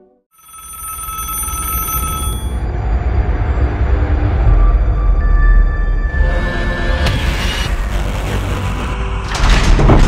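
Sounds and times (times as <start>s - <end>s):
telephone bell ringing: 0.3s - 2.7s
low rumble: 2.6s - 10.0s.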